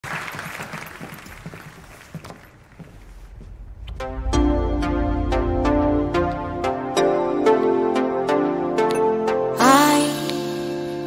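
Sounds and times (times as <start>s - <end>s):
audience applauding: 0.0s - 2.8s.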